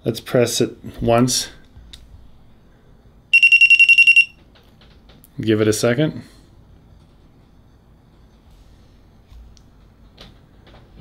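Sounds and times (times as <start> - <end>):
rapid high beeps: 3.3 - 4.4.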